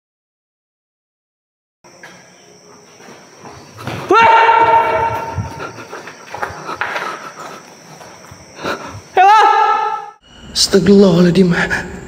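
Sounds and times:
person yelling: 0:04.1 - 0:05.4, 0:09.2 - 0:10.1
faint high steady whine: 0:07.6 - 0:12.0.

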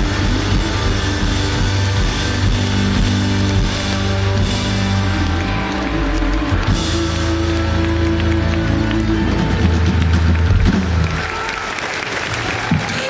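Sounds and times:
live rock band playing: 0:00.0 - 0:11.4
crowd applauding: 0:00.0 - 0:13.0.

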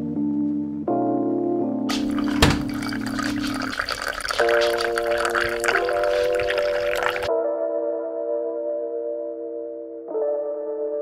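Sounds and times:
background music with keyboard chords: 0:00.0 - 0:02.6, 0:07.3 - 0:11.0
coffee pouring into a mug: 0:01.9 - 0:07.3.

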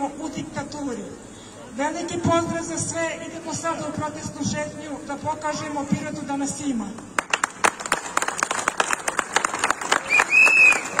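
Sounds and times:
crowd applauding: 0:07.2 - 0:11.0
high whistle: 0:10.1 - 0:11.0.

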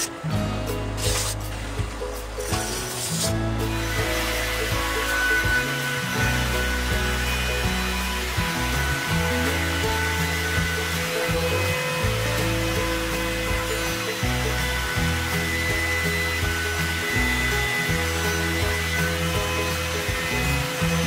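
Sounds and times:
background music: 0:00.0 - 0:21.0
router whining: 0:00.0 - 0:21.0.

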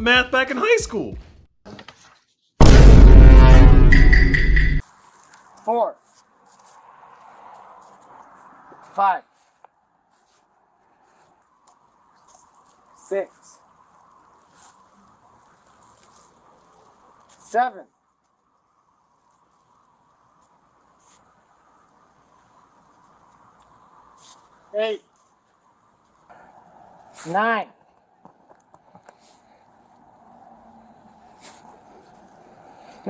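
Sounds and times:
man counting aloud: 0:00.0 - 0:01.2, 0:08.9 - 0:09.3, 0:17.5 - 0:17.9, 0:24.8 - 0:25.0, 0:27.2 - 0:27.7
faint background noise: 0:04.8 - 0:33.0
faint brief scuffs: 0:31.3 - 0:32.2.

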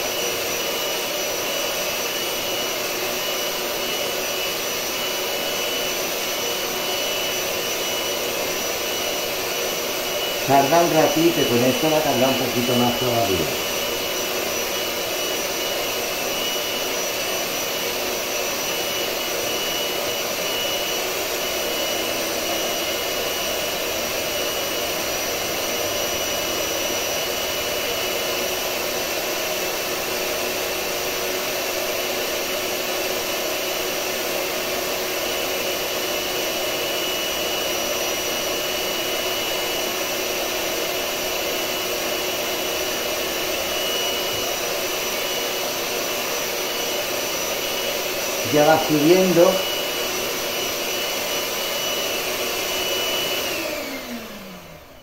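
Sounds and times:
electric hand mixer whipping eggs: 0:00.0 - 0:55.0.

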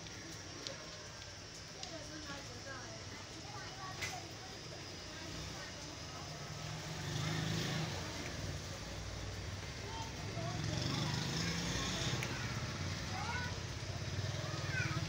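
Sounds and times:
faint indistinct voices: 0:00.0 - 0:15.0.

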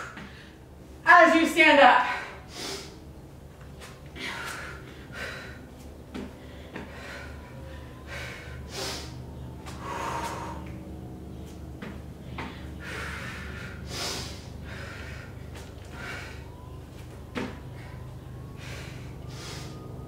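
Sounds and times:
steady low hum: 0:00.0 - 0:20.0
woman breathing hard: 0:02.1 - 0:03.1, 0:04.1 - 0:11.2, 0:12.2 - 0:16.7, 0:17.6 - 0:20.0.

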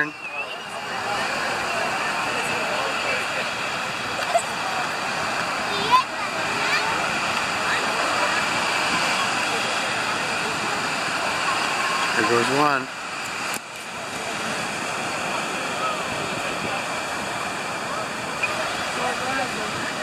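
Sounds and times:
distant voices: 0:00.0 - 0:20.0
ocean surf breaking on beach: 0:00.0 - 0:20.0.

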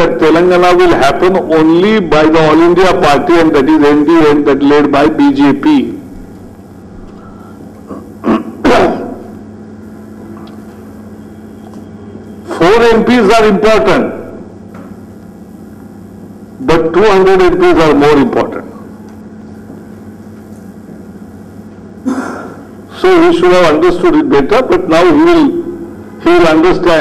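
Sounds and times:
low electrical hum: 0:00.0 - 0:27.0
man coughing: 0:07.8 - 0:09.3, 0:22.0 - 0:22.7.

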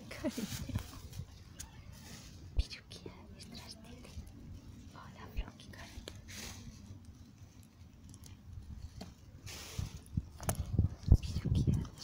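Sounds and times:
person whispering: 0:02.6 - 0:04.2, 0:04.9 - 0:06.2, 0:11.1 - 0:12.0.

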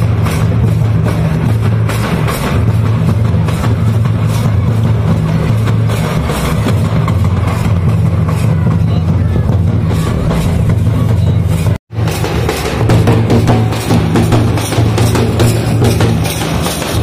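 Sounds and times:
crowd voices: 0:00.0 - 0:17.0
large drums beaten: 0:00.0 - 0:17.0.

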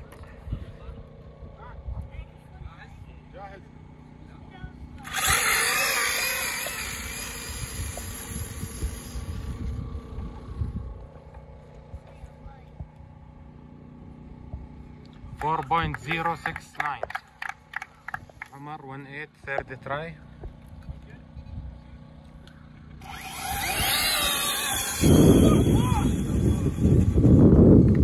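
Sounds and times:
rc car motor and tyre noise: 0:05.0 - 0:11.8, 0:22.7 - 0:28.0.

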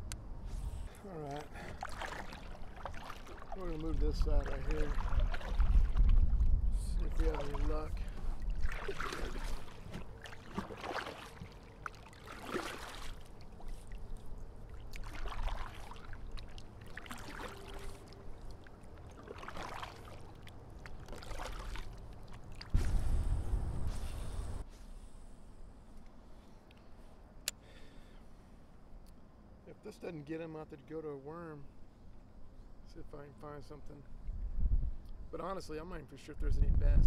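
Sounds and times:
paddle swishing and splashing: 0:00.4 - 0:23.2.

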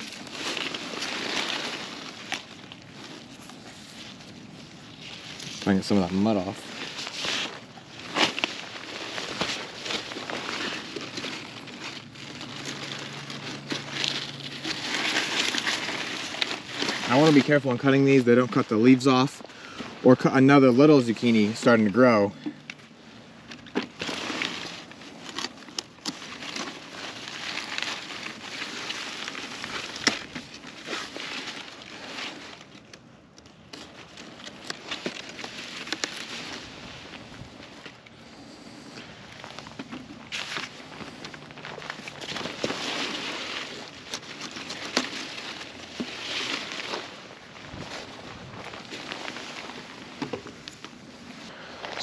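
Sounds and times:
leaves rustling and crackling: 0:00.0 - 0:52.0.

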